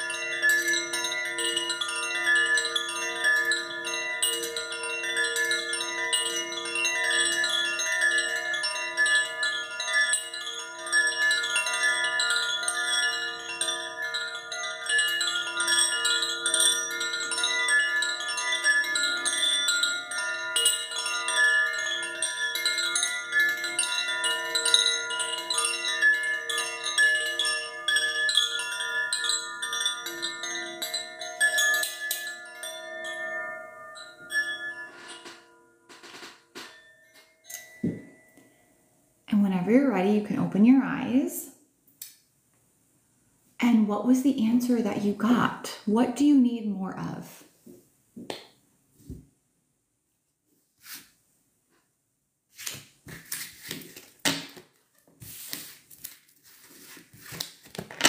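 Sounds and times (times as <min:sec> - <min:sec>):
wind chime ringing: 0:00.0 - 0:38.7.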